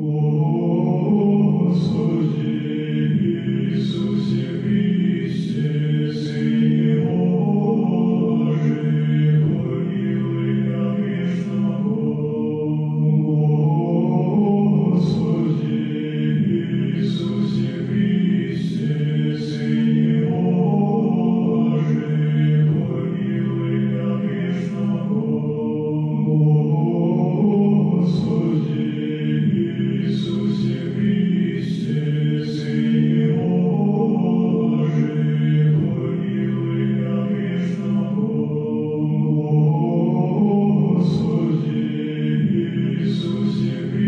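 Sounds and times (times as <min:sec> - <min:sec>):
choir chanting low: 0:00.0 - 0:44.0.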